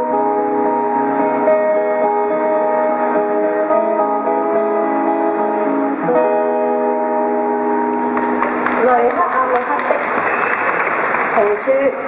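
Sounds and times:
acoustic guitar chord ringing: 0.0 - 8.4
audience applauding: 7.9 - 12.0.

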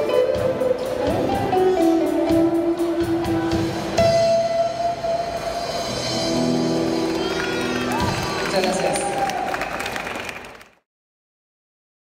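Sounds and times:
audience applause: 6.9 - 10.8.

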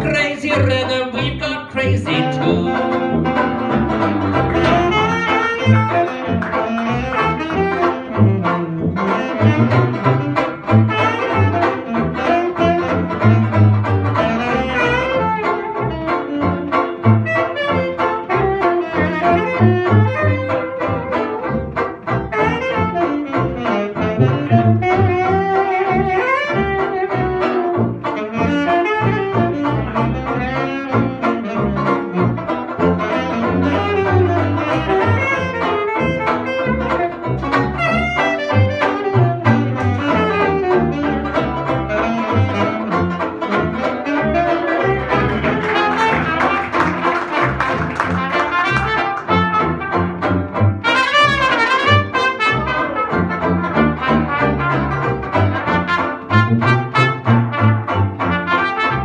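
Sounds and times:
strummed banjo: 0.0 - 59.0
tuba bass: 0.0 - 59.0
saxophones and trumpet: 0.1 - 59.0.

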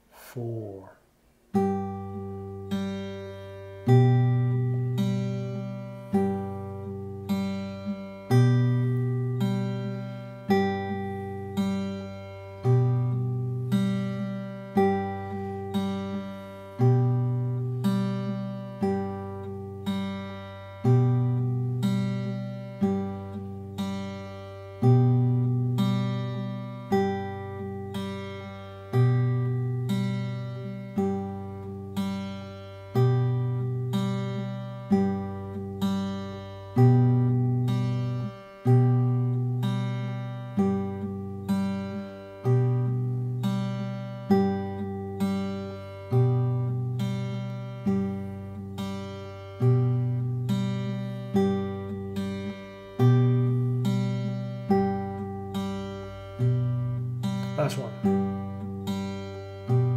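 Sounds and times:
fingerpicked acoustic guitar: 0.0 - 59.9.

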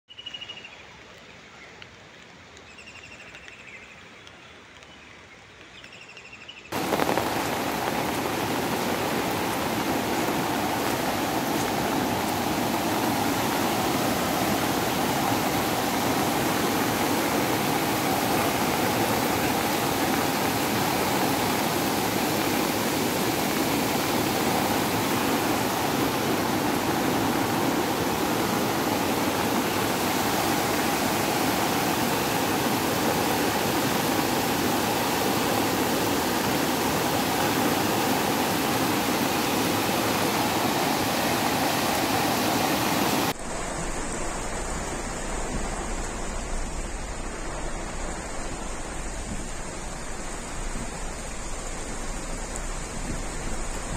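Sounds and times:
floodwater rushing: 6.7 - 53.9.

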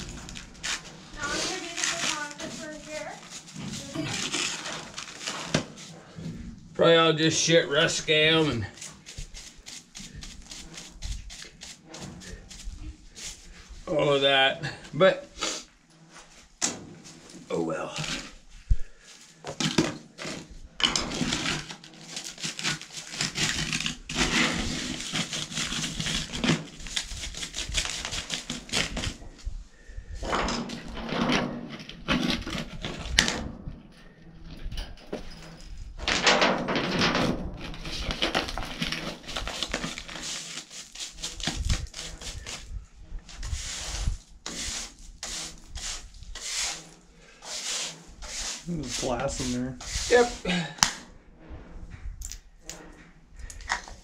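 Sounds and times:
brush sweeping gravel on steel: 0.0 - 6.2, 7.2 - 14.2, 21.2 - 28.7, 37.8 - 50.5.

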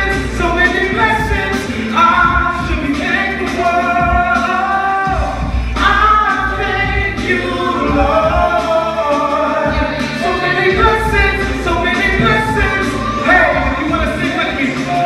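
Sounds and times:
vocal group singing harmonies: 0.0 - 15.0.

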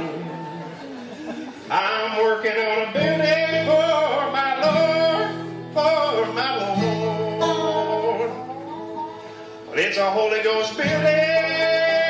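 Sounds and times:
bluegrass band playing: 0.0 - 12.0.

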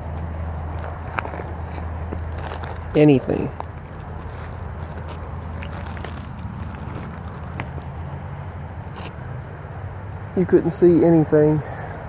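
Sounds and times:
steady low hum: 0.0 - 12.0
footsteps through dry grass: 0.2 - 9.3.

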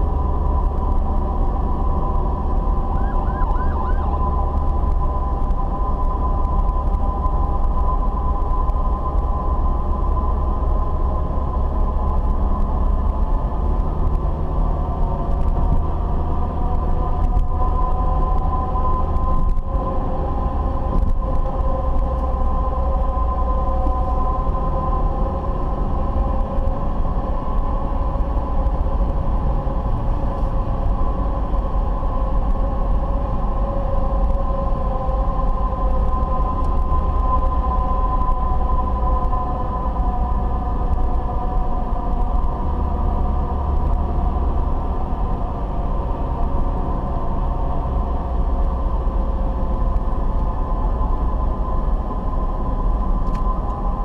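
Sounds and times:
car road and engine rumble: 0.0 - 54.0.

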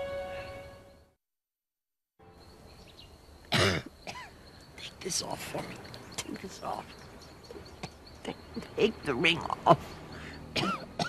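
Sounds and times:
person coughing: 3.5 - 4.3, 10.6 - 11.0.

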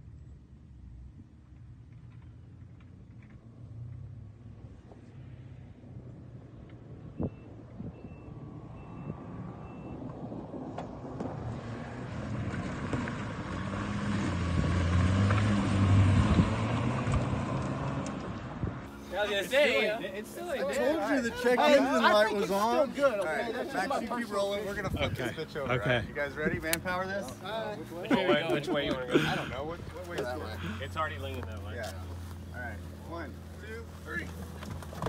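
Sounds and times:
car engine revving: 8.4 - 19.0.

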